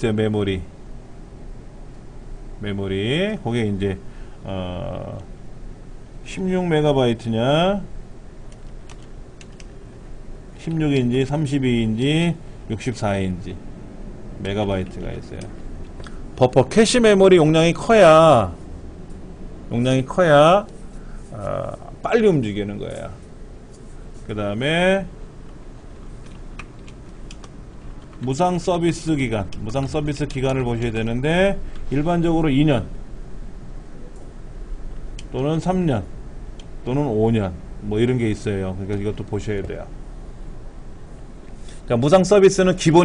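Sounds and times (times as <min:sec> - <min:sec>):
keyboard key clicks: 0:08.5 - 0:09.7
computer keyboard keystrokes: 0:08.5 - 0:09.8, 0:26.0 - 0:28.4.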